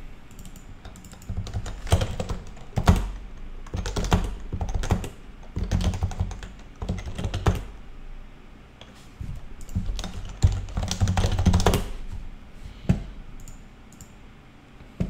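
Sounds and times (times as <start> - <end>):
typing on keyboard: 0.3 - 7.7, 9.6 - 11.9.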